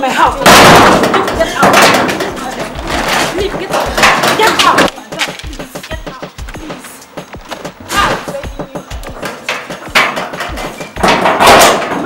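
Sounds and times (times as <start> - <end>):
knocks and bangs on metal gate: 0.4 - 4.9, 7.7 - 12.0
women shouting and crying out: 7.8 - 9.0.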